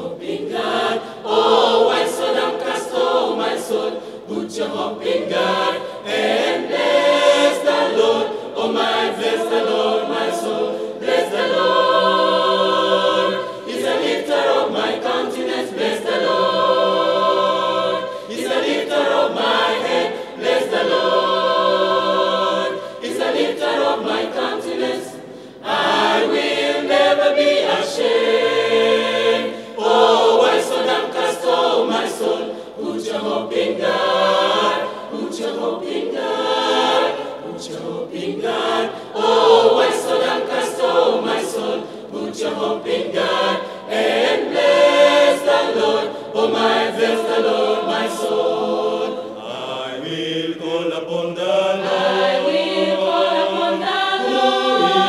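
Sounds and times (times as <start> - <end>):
mixed choir singing a hymn: 0.0 - 55.0.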